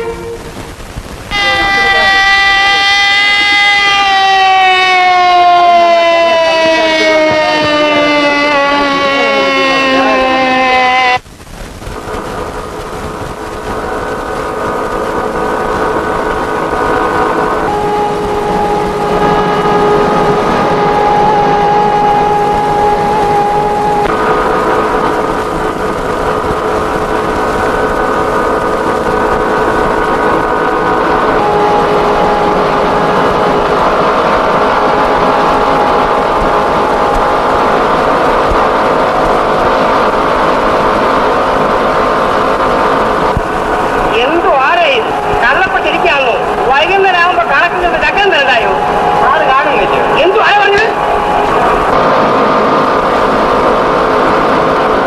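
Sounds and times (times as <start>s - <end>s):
textile machinery humming: 0.0s - 55.0s.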